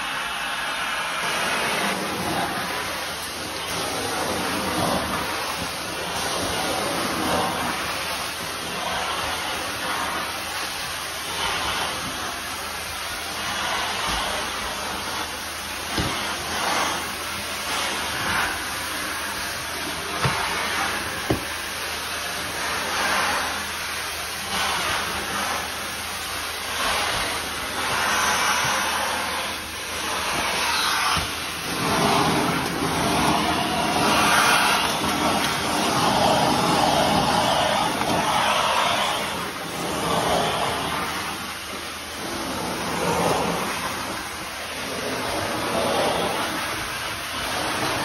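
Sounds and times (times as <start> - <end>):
vacuum wand suction hiss: 0.0 - 48.0.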